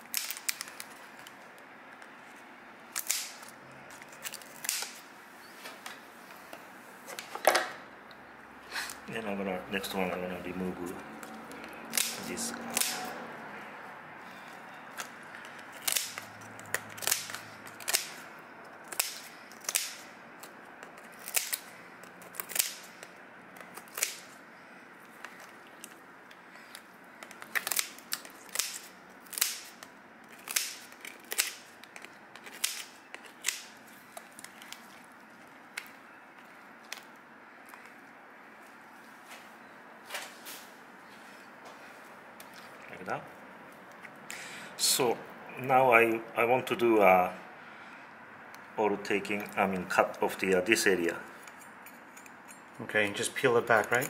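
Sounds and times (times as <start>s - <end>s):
shears snapping through shell: 11.2s - 13.2s, 15.0s - 24.3s, 27.2s - 34.8s.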